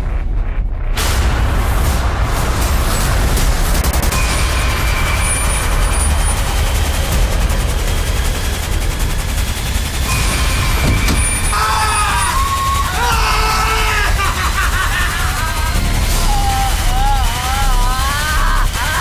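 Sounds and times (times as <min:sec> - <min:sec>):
dense rushing noise: 0:00.0 - 0:19.0
loud low rumble: 0:00.0 - 0:19.0
voice crying out: 0:11.5 - 0:19.0.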